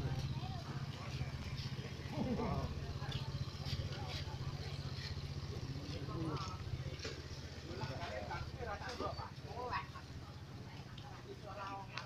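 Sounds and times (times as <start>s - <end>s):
motorcycle engine running: 0.0s - 12.0s
people's voices: 0.0s - 12.0s.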